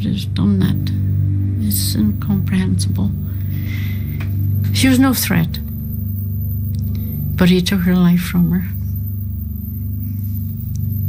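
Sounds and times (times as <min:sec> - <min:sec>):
low sombre background drone: 0:00.0 - 0:11.0.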